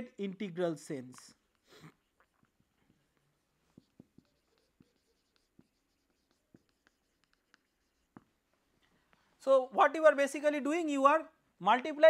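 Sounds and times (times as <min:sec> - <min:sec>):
marker on whiteboard: 0:02.3 - 0:09.2.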